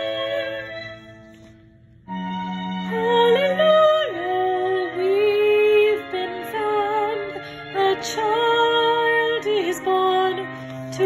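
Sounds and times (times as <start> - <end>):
woman singing soprano: 0.0 - 1.0, 2.8 - 11.0.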